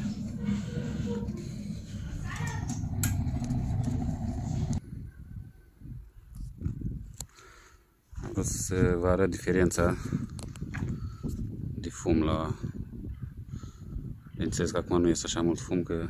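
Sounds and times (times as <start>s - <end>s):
stove fire rumbling: 0.0s - 4.8s.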